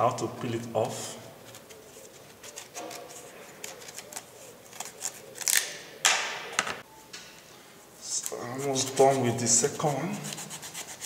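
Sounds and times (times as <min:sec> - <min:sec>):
knife scraping fruit rind: 0:01.4 - 0:05.6, 0:08.6 - 0:11.0
knife rasping strokes: 0:08.6 - 0:11.0.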